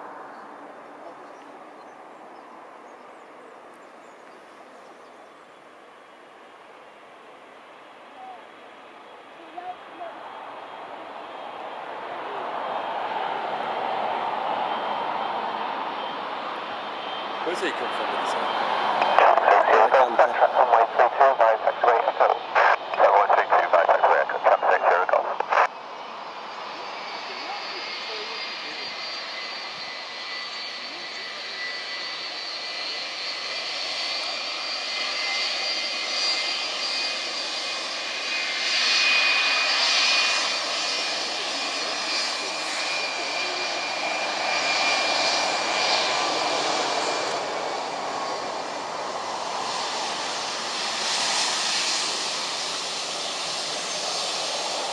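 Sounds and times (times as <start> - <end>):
jet engines rolling on runway: 0.0 - 54.9.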